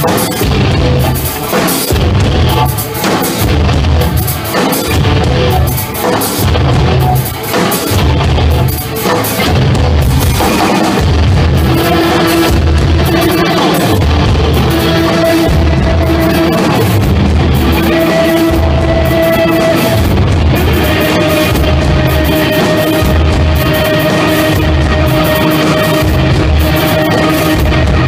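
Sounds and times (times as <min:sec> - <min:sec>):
live rock band: 0:00.0 - 0:28.0
pulsing heavy low end: 0:05.0 - 0:05.7, 0:09.5 - 0:28.0.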